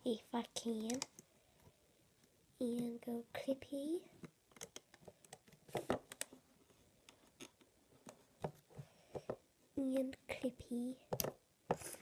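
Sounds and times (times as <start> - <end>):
plastic clicks and taps: 0.8 - 1.2, 4.2 - 6.3, 11.1 - 11.8.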